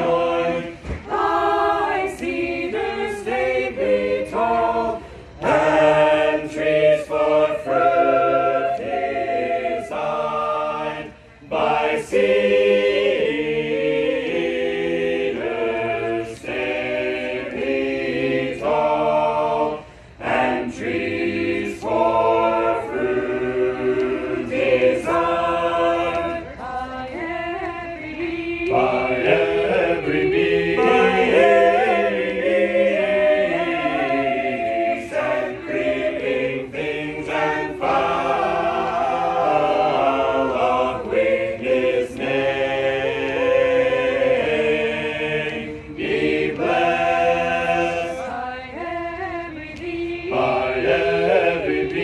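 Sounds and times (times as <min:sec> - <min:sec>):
choir singing a cappella hymn: 0:00.0 - 0:52.0.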